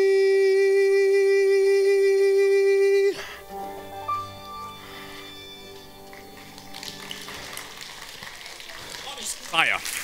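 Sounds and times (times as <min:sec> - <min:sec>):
audience clapping: 0:05.6 - 0:10.0.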